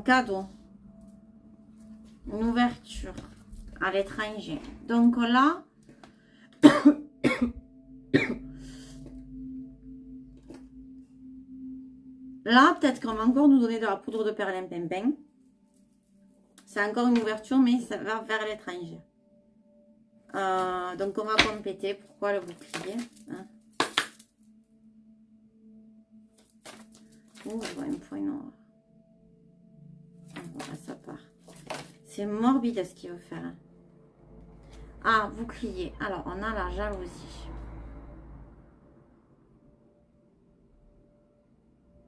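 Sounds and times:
person coughing: 6.6 - 8.6
steady ringing tone: 7.7 - 14.1.

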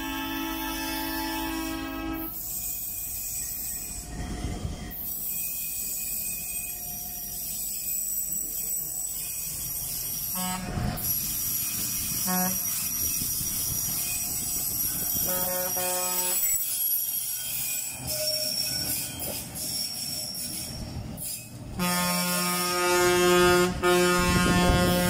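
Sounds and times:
machine horn blasts: 15.2 - 16.6, 21.8 - 25.0.

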